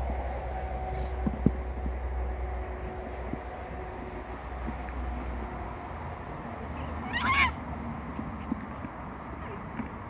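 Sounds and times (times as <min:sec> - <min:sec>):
fox squealing: 0:06.6 - 0:08.5.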